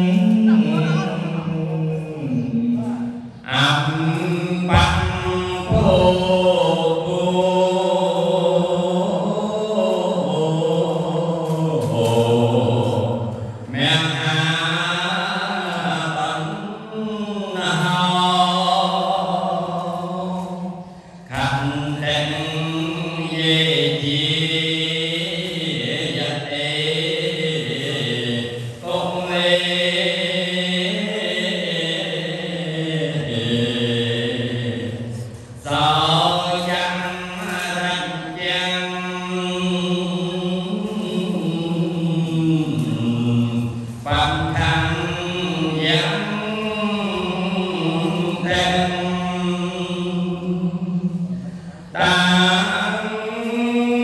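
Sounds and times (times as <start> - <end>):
man chanting into a microphone: 0.0 - 54.0.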